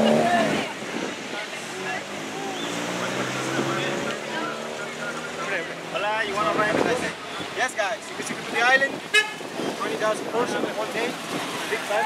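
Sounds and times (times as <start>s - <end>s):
people talking: 0.0s - 9.0s, 9.7s - 12.0s
cars passing: 0.0s - 12.0s.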